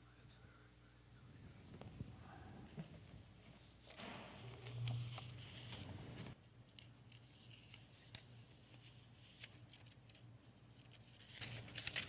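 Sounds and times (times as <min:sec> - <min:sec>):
low steady hum: 0:00.0 - 0:10.8
paper rustling: 0:02.8 - 0:12.0.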